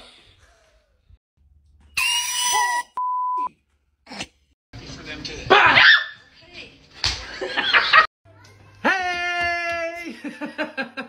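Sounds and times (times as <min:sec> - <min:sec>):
short steady beep: 0:03.0 - 0:03.5.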